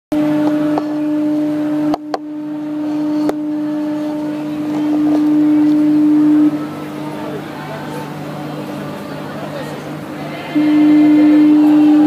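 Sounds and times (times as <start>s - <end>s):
ship's horn blast: 0.1s - 12.0s.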